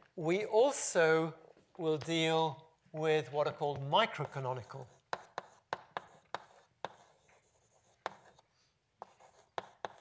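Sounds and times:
chalk tapping and scratching on blackboard: 3.6 - 10.0.

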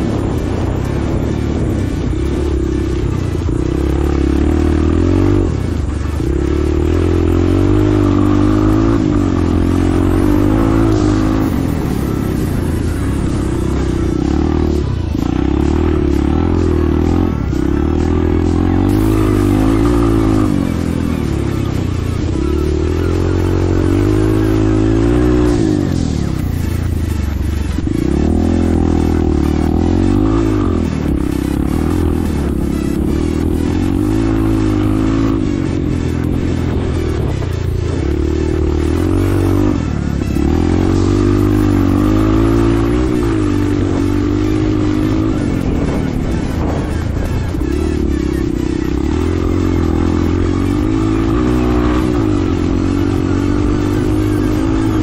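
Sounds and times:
dirt motorcycle engine revving: 0.0 - 55.0.

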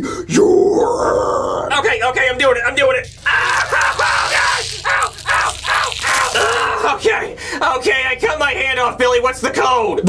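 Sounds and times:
man screaming in pain: 3.2 - 7.0.

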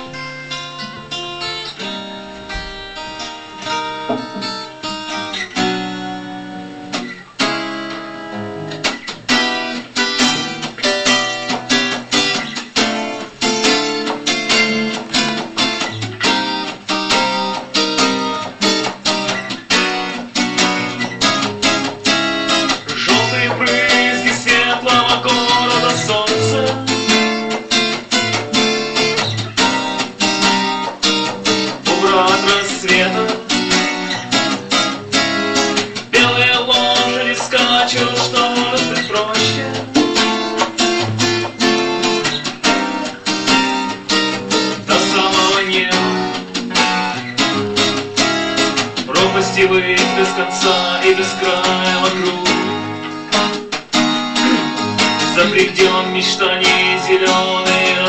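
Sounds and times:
acoustic guitar picking: 0.0 - 58.0.

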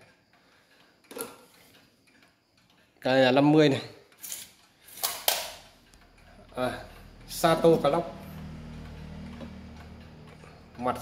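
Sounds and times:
pendulum clock ticking: 0.0 - 11.0
steady low hum: 5.6 - 11.0.

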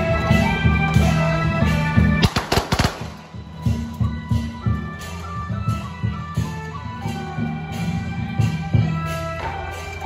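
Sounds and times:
firecrackers going off: 2.1 - 3.9.

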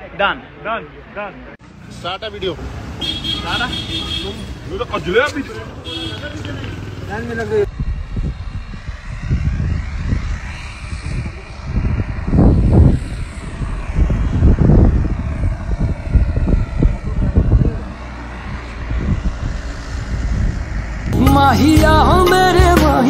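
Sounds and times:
wind buffeting a microphone: 7.4 - 21.2.

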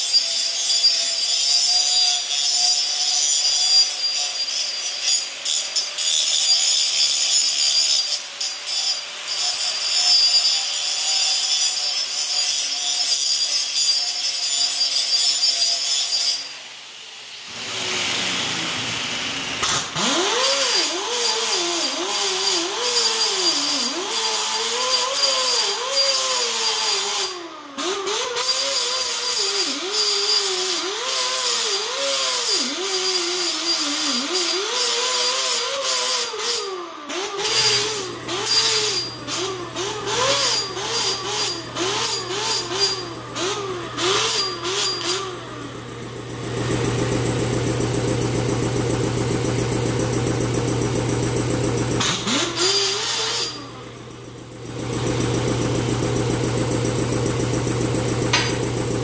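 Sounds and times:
angle grinder grinding metal: 0.0 - 59.0.

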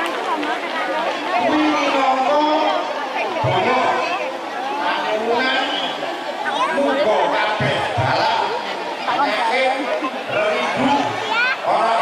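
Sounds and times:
crowd chatter: 0.0 - 12.0
man speaking into a microphone: 1.4 - 4.2, 4.8 - 6.0, 6.6 - 12.0.

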